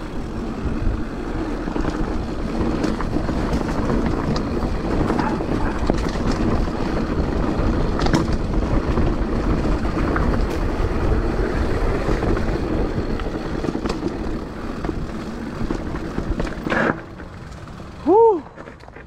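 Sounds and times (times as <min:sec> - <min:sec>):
wind buffeting microphone: 0:00.0 - 0:16.7
bike rattling over bumps: 0:00.0 - 0:19.0
bike tyre rumble on dirt: 0:00.0 - 0:19.0.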